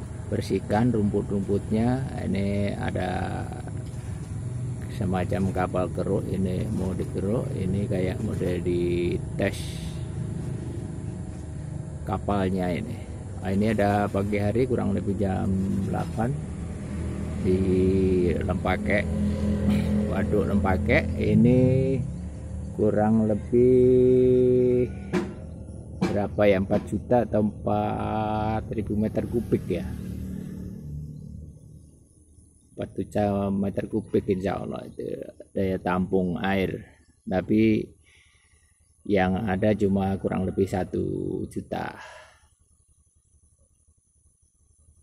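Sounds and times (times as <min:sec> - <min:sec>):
low engine hum: 0:00.0 - 0:36.7
diesel machinery rumbling: 0:00.0 - 0:36.8.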